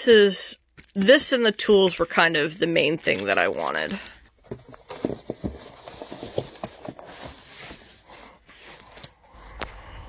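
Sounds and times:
plastic rustling: 0:03.0 - 0:09.4.

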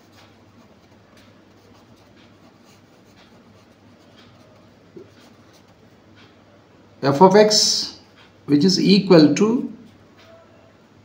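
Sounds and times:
marker pen writing on paper: 0:00.0 - 0:06.3.

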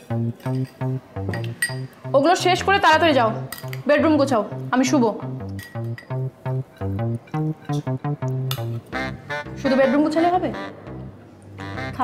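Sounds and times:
cutlery clinking against plates: 0:01.4 - 0:01.8, 0:03.5 - 0:03.8, 0:05.6 - 0:06.1, 0:06.8 - 0:07.9.

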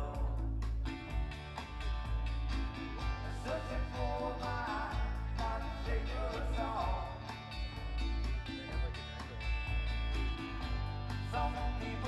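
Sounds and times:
person singing: 0:00.0 - 0:01.0, 0:03.1 - 0:07.4, 0:11.2 - 0:12.0
electric bass: 0:00.0 - 0:12.0
electric guitar: 0:00.0 - 0:12.0
keyboard: 0:00.0 - 0:12.0.

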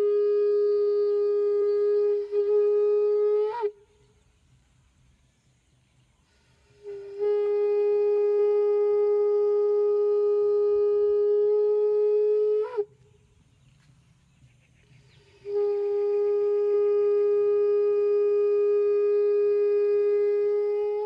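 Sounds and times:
horn blasts: 0:00.0 - 0:03.9, 0:06.5 - 0:13.0, 0:15.4 - 0:21.0.

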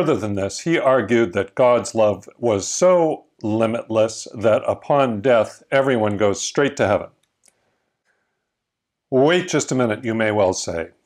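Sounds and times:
man speaking: 0:00.0 - 0:07.2, 0:09.1 - 0:11.0.

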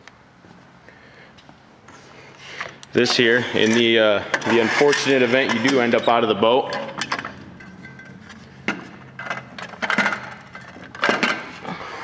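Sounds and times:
metal ladder clanking: 0:03.0 - 0:11.6.

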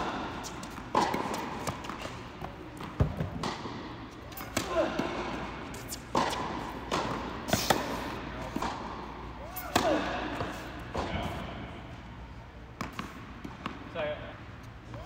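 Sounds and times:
ball bouncing on hard court: 0:00.0 - 0:05.4, 0:06.1 - 0:09.0, 0:09.6 - 0:11.6, 0:12.8 - 0:13.8
racket striking tennis ball: 0:00.0 - 0:11.7, 0:12.8 - 0:13.8.

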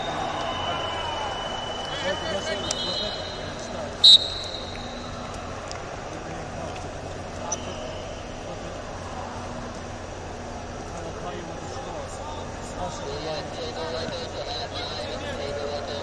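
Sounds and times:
voices in a large hall: 0:00.0 - 0:16.0
referee's whistle blast: 0:01.8 - 0:05.2.

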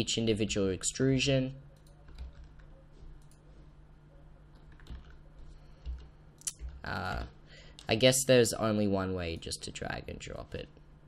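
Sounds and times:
low steady hum: 0:00.0 - 0:11.0
keyboard clicks: 0:01.7 - 0:03.4, 0:04.5 - 0:07.9
computer mouse clicks: 0:01.8 - 0:03.4.

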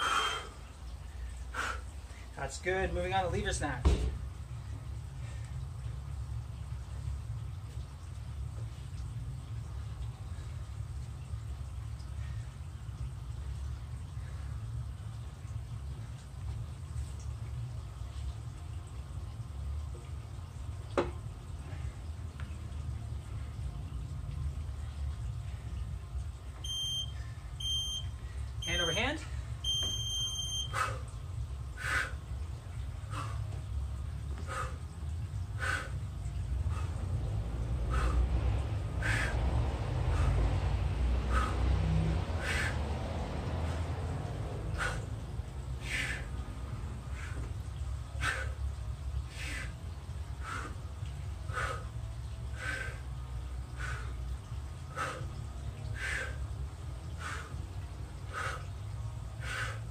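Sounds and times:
digital timer beeping: 0:26.6 - 0:30.7
low rumble: 0:30.8 - 0:59.9.

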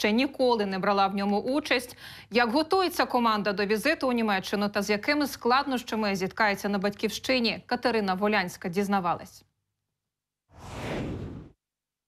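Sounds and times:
whoosh sound effect: 0:10.6 - 0:11.6.

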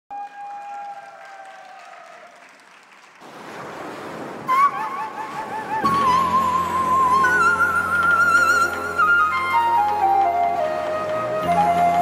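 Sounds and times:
audience applause: 0:00.1 - 0:03.7, 0:05.8 - 0:12.0.

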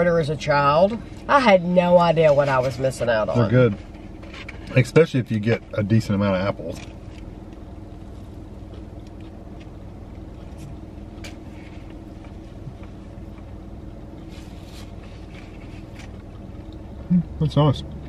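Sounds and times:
car engine idling hum: 0:00.0 - 0:18.0.

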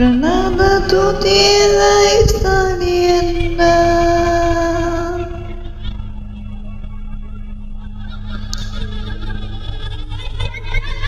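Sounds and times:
person singing with vibrato: 0:00.0 - 0:06.3.

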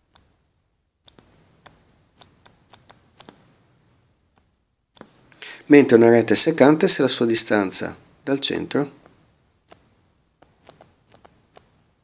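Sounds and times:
stylus tapping on tablet: 0:01.0 - 0:03.5.

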